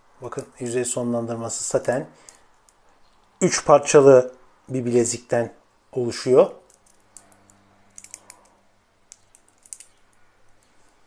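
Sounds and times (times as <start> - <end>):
watch bracelet clicking: 6.6 - 10.7.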